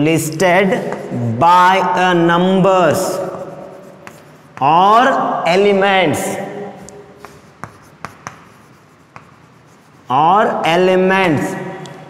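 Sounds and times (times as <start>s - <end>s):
chalk scratching on blackboard: 0.6s - 1.2s, 2.8s - 5.2s, 6.8s - 11.6s
chalk tapping on blackboard: 0.7s - 1.1s, 2.9s - 5.1s, 6.8s - 10.3s.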